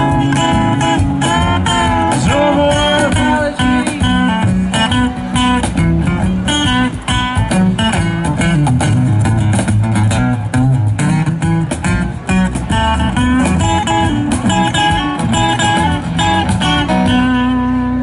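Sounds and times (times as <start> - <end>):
guitar picking lead: 0.0 - 18.0
upright bass walking line: 0.0 - 18.0.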